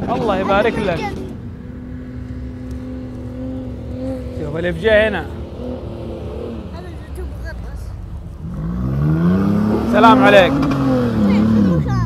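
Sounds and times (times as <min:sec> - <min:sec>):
distant suv engine at high revs: 0:00.0 - 0:12.0.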